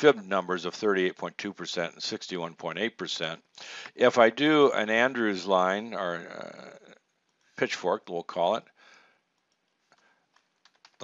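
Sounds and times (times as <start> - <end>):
faint computer clicks: 9.3 - 11.0.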